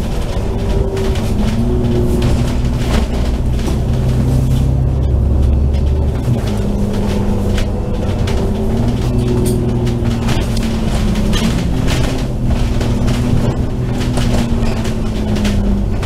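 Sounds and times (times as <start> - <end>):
bus body rattling: 0.0 - 16.0
bus diesel engine rumbling: 0.0 - 16.0.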